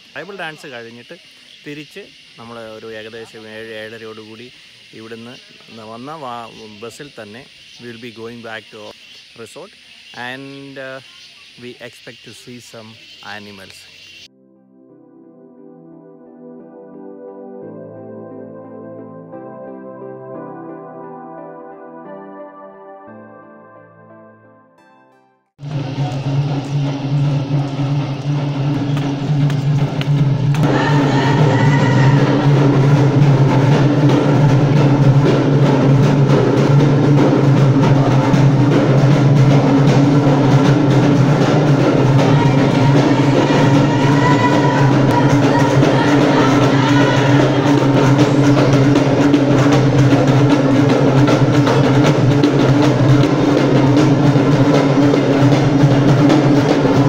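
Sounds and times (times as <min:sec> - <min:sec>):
drums beating: 0:25.6 - 0:57.0.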